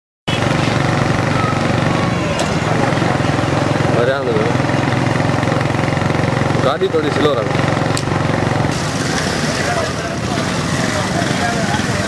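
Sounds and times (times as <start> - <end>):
small motorcycle engines running: 0.3 - 12.0.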